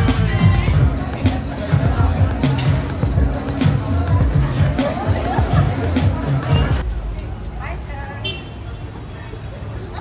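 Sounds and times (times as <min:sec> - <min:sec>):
indistinct voices: 0:00.0 - 0:08.0
low rumble of traffic: 0:00.0 - 0:10.0.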